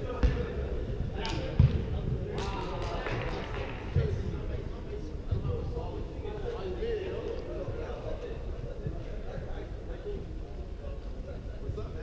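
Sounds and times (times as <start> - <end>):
football kicked with dull thud: 0.2 - 0.5, 1.6 - 2.0.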